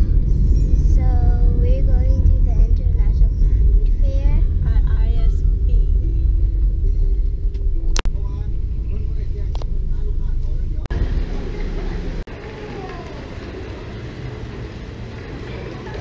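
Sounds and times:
low outdoor rumble: 0:00.0 - 0:16.0
faint voices: 0:08.2 - 0:14.5, 0:15.1 - 0:16.0.

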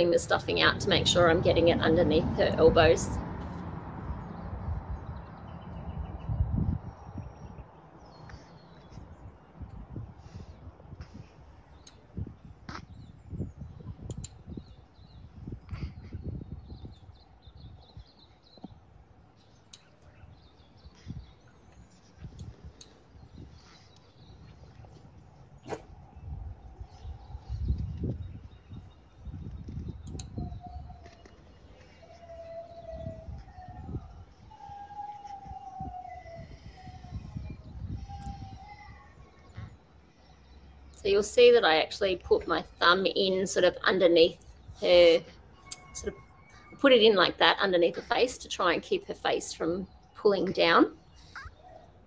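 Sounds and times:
wind gusting on microphone: 0:00.0 - 0:52.0.

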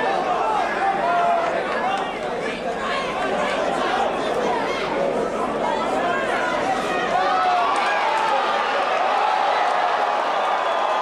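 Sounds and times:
crowd shouting: 0:00.0 - 0:11.0.

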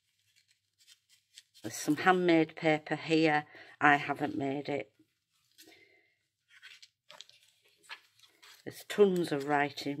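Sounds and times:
paper pages turning: 0:00.0 - 0:02.2, 0:06.4 - 0:10.0.

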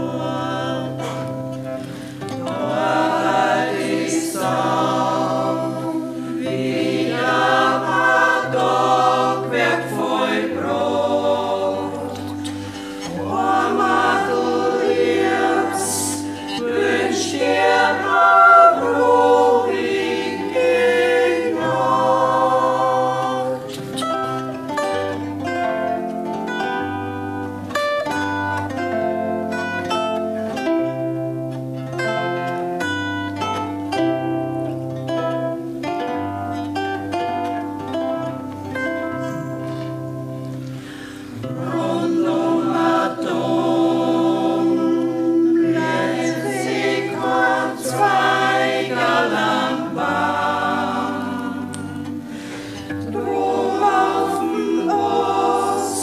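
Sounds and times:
mixed choir singing: 0:00.0 - 0:25.3, 0:39.0 - 0:56.0.

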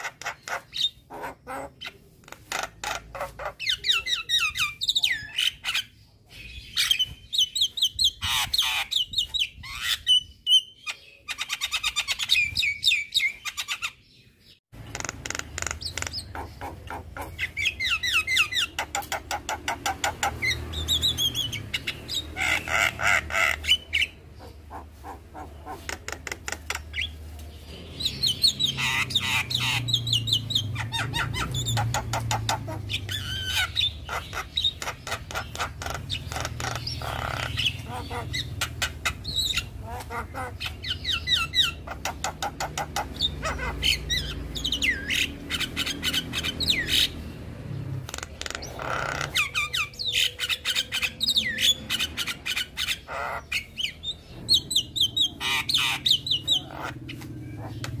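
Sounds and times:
myna bird chattering song: 0:00.0 - 0:58.0.

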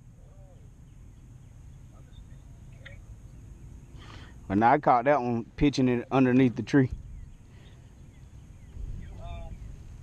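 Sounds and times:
bird chirp: 0:00.0 - 0:10.0
steady low rumble: 0:00.0 - 0:10.0.

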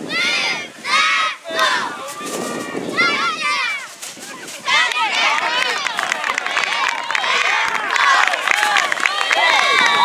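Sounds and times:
crowd noise: 0:00.0 - 0:10.0
children yelling: 0:00.1 - 0:10.0.

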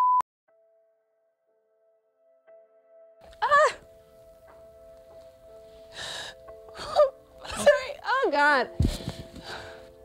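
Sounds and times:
soft background music: 0:00.5 - 0:10.0
woman crying: 0:03.3 - 0:03.9, 0:06.7 - 0:08.6.

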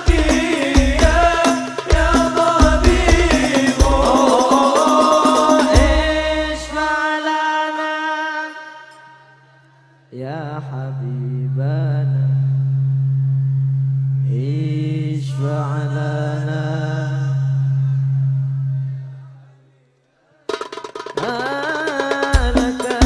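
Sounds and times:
man singing ornamented phrases: 0:00.0 - 0:12.8, 0:14.2 - 0:18.2, 0:21.2 - 0:23.0
steady low drone: 0:02.0 - 0:07.0.

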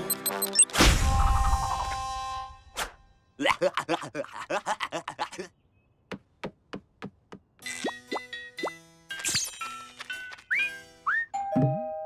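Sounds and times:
cartoon music with plucked notes: 0:07.6 - 0:12.0.

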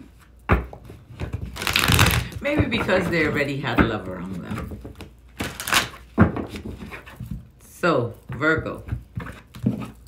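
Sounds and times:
cards riffle shuffling: 0:01.5 - 0:02.4, 0:05.4 - 0:06.0.

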